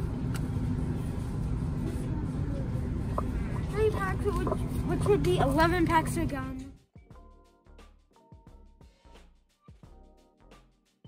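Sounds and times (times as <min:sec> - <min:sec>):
low rumble and hum: 0:00.0 - 0:07.4.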